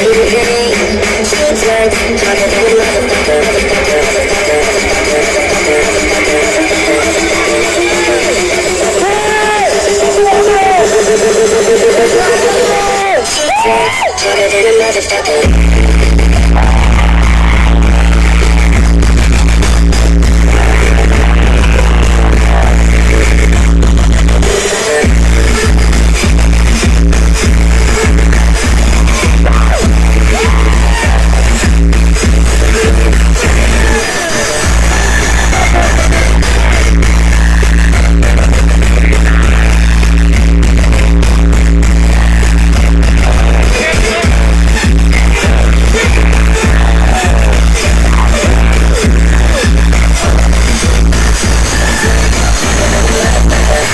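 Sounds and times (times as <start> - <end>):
bass-heavy dance music: 0.0 - 53.9.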